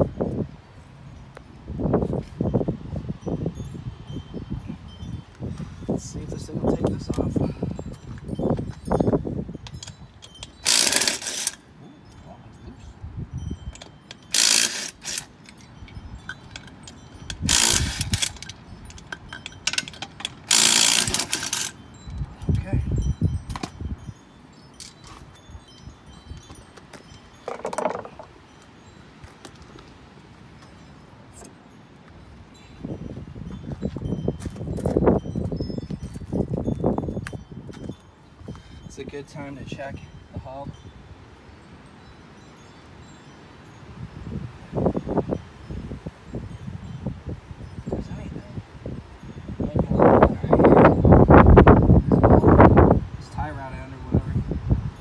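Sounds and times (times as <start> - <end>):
socket wrench bursts: 10.4 - 11.6, 13.8 - 15.6, 17.3 - 21.8
dull knocks and handling: 26.9 - 28.3.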